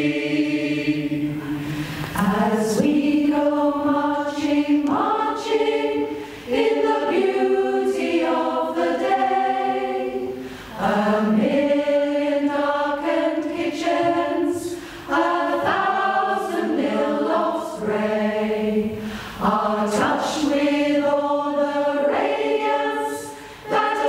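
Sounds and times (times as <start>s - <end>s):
mixed choir singing unaccompanied: 0.0s - 24.0s.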